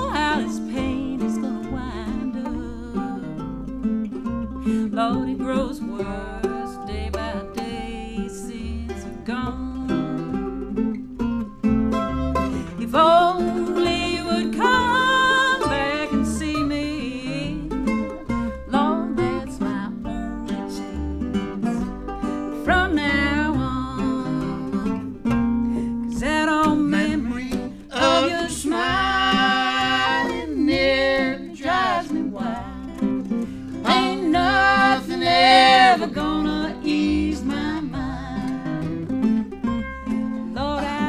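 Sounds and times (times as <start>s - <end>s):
acoustic string band music: 0.0s - 41.0s.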